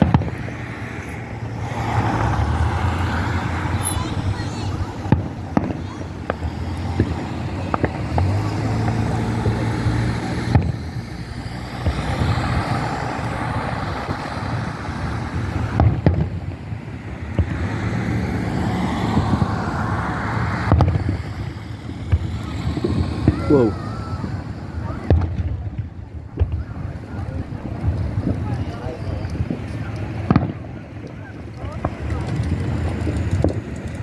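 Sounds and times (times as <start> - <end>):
fireworks bangs: 0.0 - 34.0
people talking: 1.6 - 15.8, 22.2 - 34.0.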